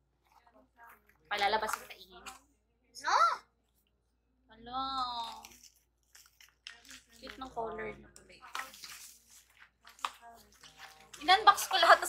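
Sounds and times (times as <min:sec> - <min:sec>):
woman's voice: 0:11.1 - 0:12.0.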